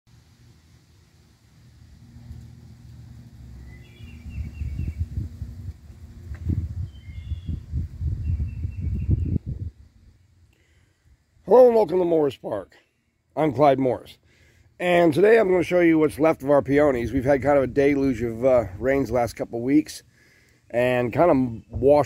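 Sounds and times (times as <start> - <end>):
birds chirping: 3.5 - 5.3, 6.8 - 9.5, 16.2 - 22.0.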